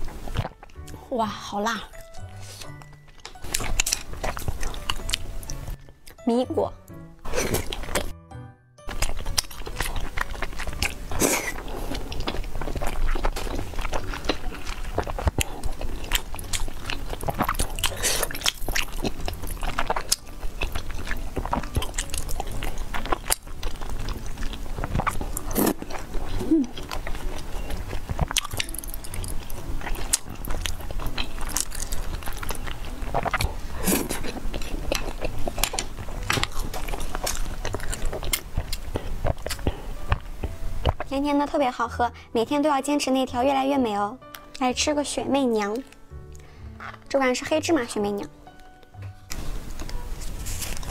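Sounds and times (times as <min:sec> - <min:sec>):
chewing wet food: 0:00.0 - 0:06.2, 0:06.8 - 0:08.2, 0:08.9 - 0:41.4, 0:45.6 - 0:47.2.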